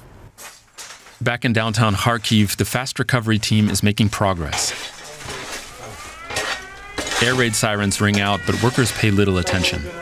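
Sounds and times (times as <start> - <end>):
air raid siren wailing: 4.5 - 10.0.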